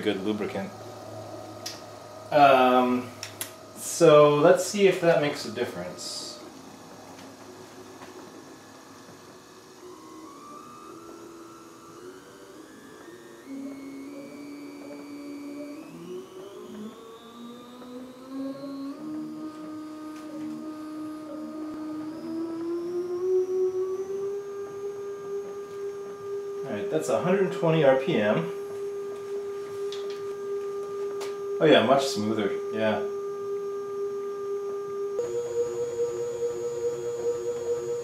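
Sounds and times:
stepper motor whine rising: 0.0 - 38.0.

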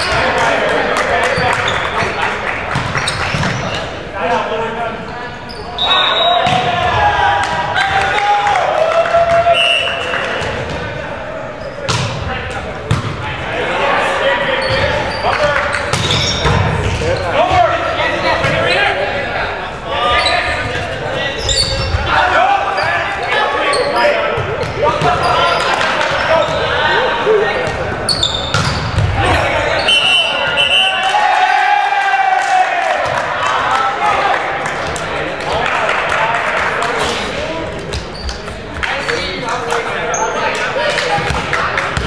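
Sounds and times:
players calling: 0.0 - 42.0
referee's whistle blast: 5.8 - 6.6, 9.5 - 10.0, 29.8 - 31.2
volleyball hits: 6.3 - 8.2, 11.8 - 13.2, 28.4 - 29.5.

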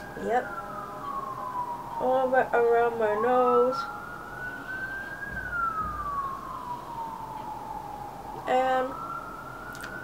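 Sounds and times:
distant siren wailing: 0.0 - 10.0.

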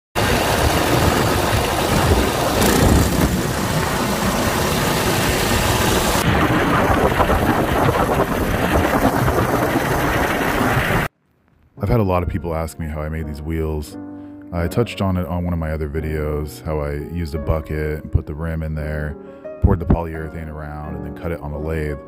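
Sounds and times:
railcart rolling on track: 0.2 - 6.3
engine running: 0.2 - 6.4.

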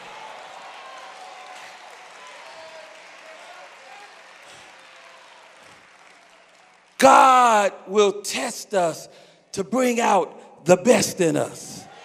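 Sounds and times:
congregation applauding: 0.0 - 7.8.

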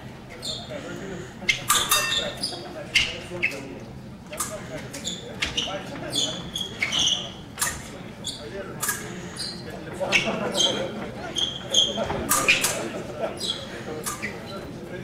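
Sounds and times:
shoe squeaks: 0.4 - 0.8, 1.5 - 3.7, 4.9 - 14.7.

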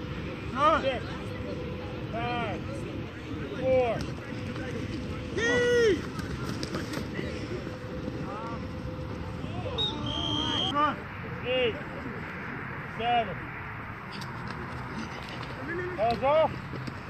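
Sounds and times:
referee's whistle: 9.7 - 10.8.

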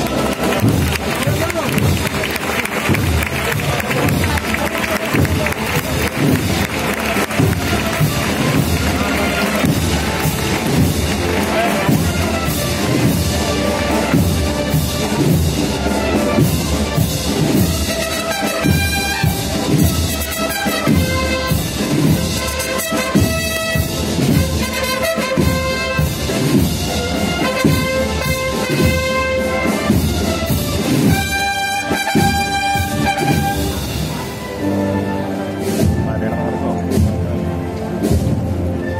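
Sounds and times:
wind band playing a march: 0.0 - 38.9.

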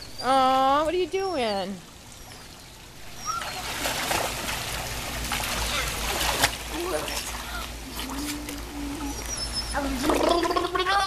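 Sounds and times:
child gurgling through water: 6.8 - 11.0.

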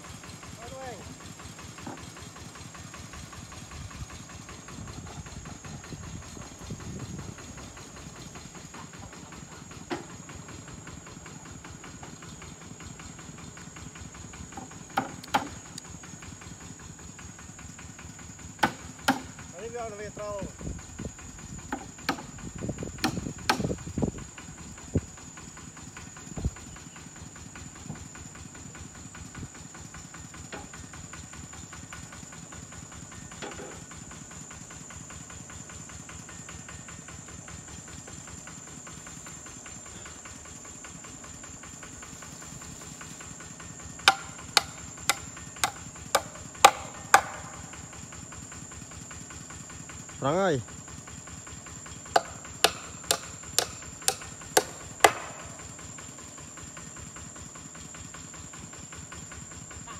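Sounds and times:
high insect drone: 0.0 - 2.0, 3.2 - 59.9
hammer striking nail: 44.1 - 47.6, 52.2 - 55.6
scattered knocks: 44.1 - 47.6, 52.2 - 55.4.

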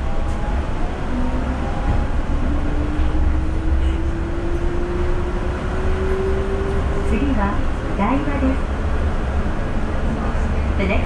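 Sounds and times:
train rumble inside car: 0.0 - 11.0.

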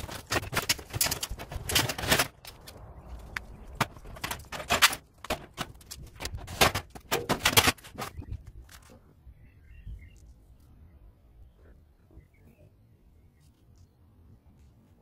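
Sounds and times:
sheet metal clanking and rattling: 3.8 - 8.3.

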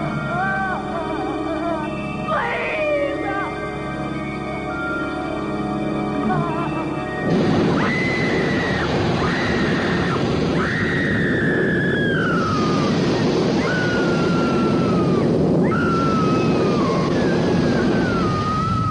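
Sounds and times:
high whistling tone sliding down: 7.0 - 18.9.

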